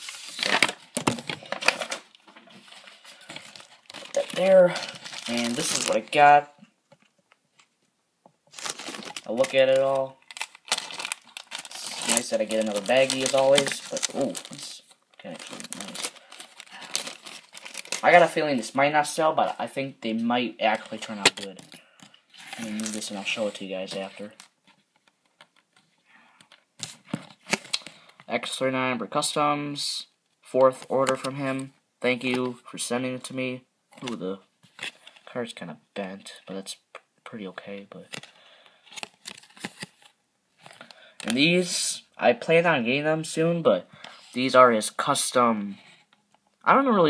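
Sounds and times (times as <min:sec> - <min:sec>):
packaging rustling on a table: 0:00.0 - 0:06.0, 0:08.5 - 0:14.7, 0:15.3 - 0:18.1.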